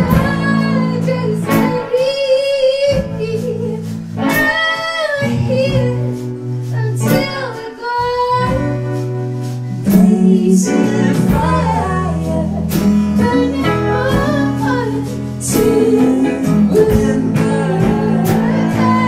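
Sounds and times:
strummed acoustic guitars: 0:00.0 - 0:19.0
woman singing: 0:00.0 - 0:19.0.

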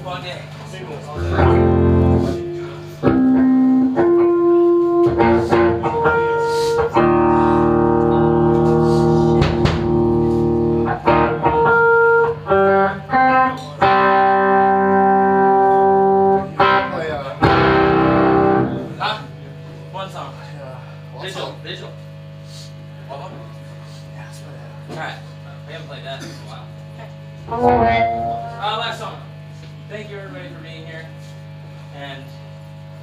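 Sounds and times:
electric guitar chords and notes: 0:01.2 - 0:19.0, 0:27.4 - 0:28.6.

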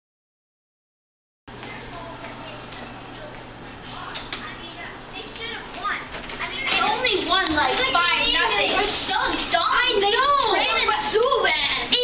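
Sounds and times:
children shouting and chattering: 0:01.6 - 0:12.0.

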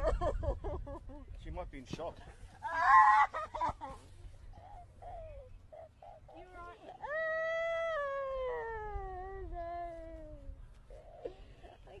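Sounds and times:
woman wailing: 0:02.6 - 0:03.4.

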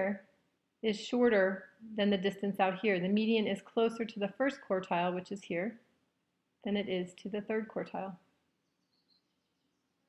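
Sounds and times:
woman's voice: 0:00.0 - 0:00.2, 0:00.8 - 0:05.8, 0:06.7 - 0:08.2.

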